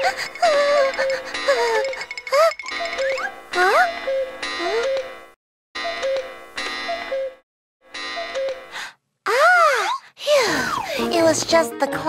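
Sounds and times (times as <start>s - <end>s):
cartoon clock ticking and chiming: 0.0s - 5.1s
music: 10.8s - 12.0s.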